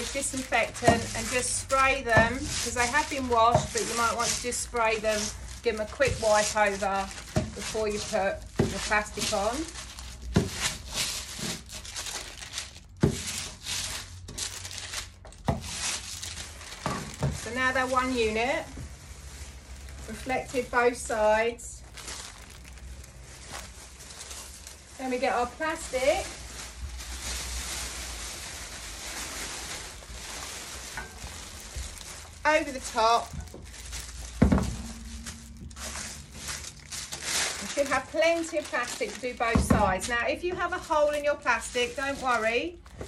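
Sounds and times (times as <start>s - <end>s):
paper and plastic crinkling under iron: 0.0s - 43.0s.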